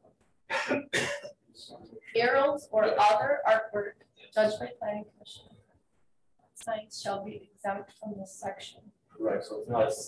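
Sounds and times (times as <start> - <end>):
person coughing: 0.5 - 1.3
faint speech: 0.5 - 5.4, 9.2 - 10.0.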